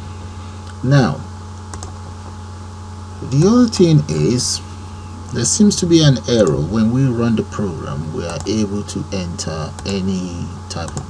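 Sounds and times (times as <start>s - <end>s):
low hum: 0.0s - 11.0s
computer mouse clicks: 1.7s - 2.0s.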